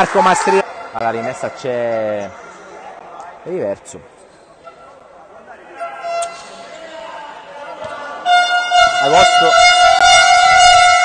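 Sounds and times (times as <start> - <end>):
air horn long blast: 8.2 - 11.0.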